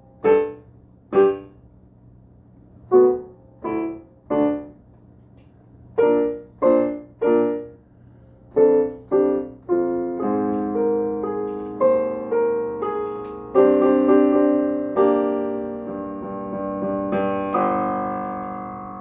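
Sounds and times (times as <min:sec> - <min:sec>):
digital piano chords: 0:00.0 - 0:01.8, 0:02.6 - 0:19.0.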